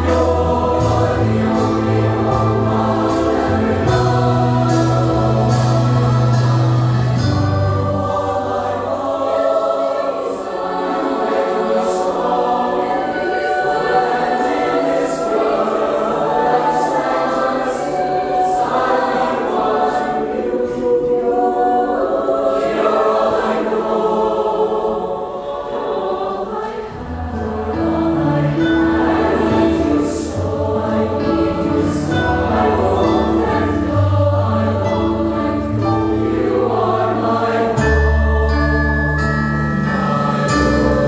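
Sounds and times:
choir singing in harmony: 0.0 - 41.0.

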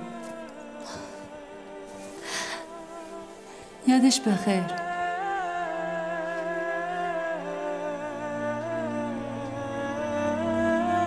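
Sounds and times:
soft slow background music: 0.0 - 11.0.

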